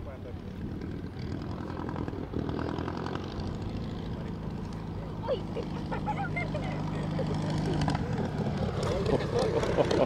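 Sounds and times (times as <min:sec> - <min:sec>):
light aircraft engine drone: 0:00.0 - 0:10.0.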